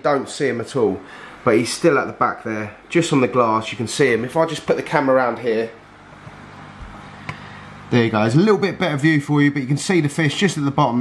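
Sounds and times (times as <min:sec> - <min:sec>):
aquarium equipment humming: 0:00.0 - 0:11.0.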